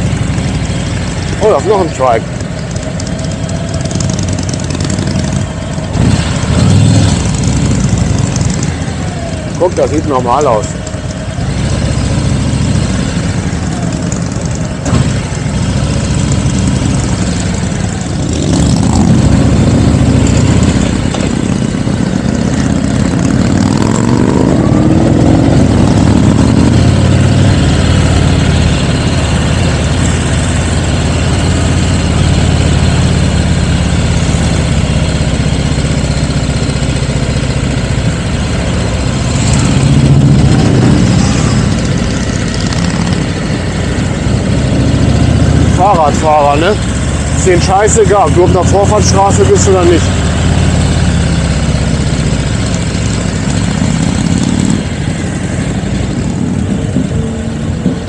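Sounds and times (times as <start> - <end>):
motorcycle engines running: 0.0 - 58.0.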